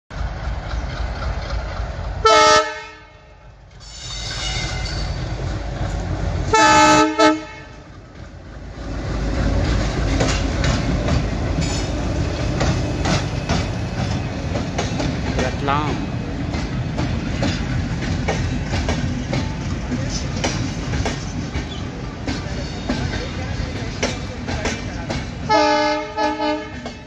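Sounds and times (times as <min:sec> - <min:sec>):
wheels clicking over rail joints: 0:00.1 - 0:02.2, 0:07.8 - 0:25.5
locomotive horn blasts: 0:02.2 - 0:03.4, 0:06.5 - 0:07.8, 0:25.5 - 0:26.9.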